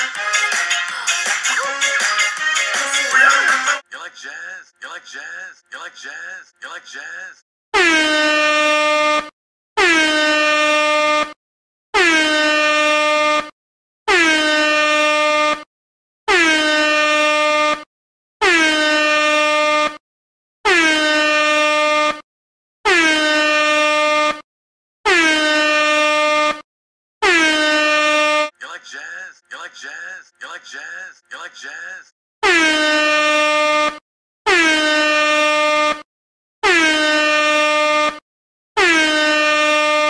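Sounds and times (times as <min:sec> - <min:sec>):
air horn blasts: 0:07.8 - 0:11.4, 0:12.0 - 0:13.5, 0:14.1 - 0:15.7, 0:16.3 - 0:19.8, 0:20.6 - 0:22.2, 0:22.8 - 0:24.4, 0:25.1 - 0:26.4, 0:27.2 - 0:28.5, 0:32.4 - 0:36.0, 0:36.6 - 0:38.2, 0:38.8 - 0:40.0.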